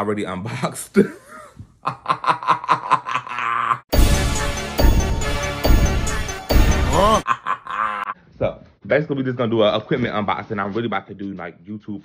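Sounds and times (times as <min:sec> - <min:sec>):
loud music: 0:03.9 - 0:07.2
man laughing in short bursts: 0:06.9 - 0:08.2.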